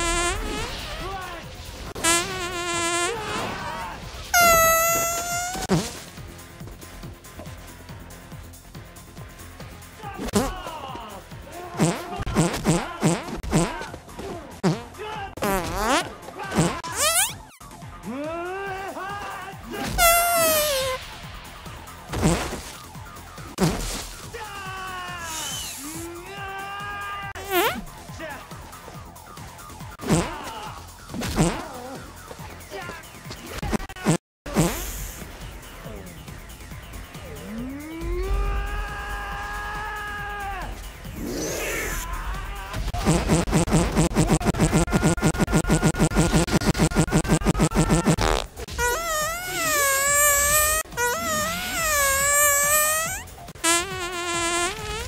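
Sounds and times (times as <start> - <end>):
fart sound effects: 0.0 - 0.8, 1.9 - 3.5, 4.3 - 6.0, 10.2 - 10.6, 11.8 - 13.9, 14.6 - 17.6, 19.9 - 21.0, 22.1 - 22.8, 23.5 - 24.0, 27.4 - 27.9, 30.0 - 30.4, 31.2 - 31.7, 33.5 - 35.2, 42.9 - 55.0
music: 0.0 - 55.0
low electronic film music: 35.0 - 43.5.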